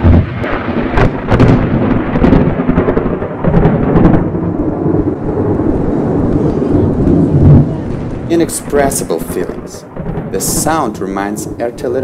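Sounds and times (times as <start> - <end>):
thunder rumbling and cracking: 0.0 - 12.0.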